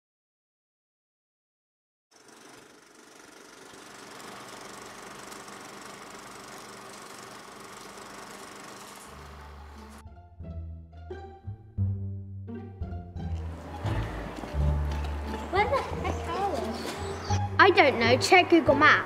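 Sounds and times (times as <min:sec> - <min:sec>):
film projector whirring and rattling: 0:02.1 - 0:10.0.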